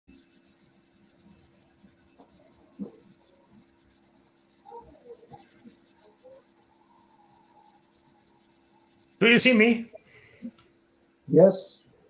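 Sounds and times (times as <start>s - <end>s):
low hum and hiss: 0.2s - 12.0s.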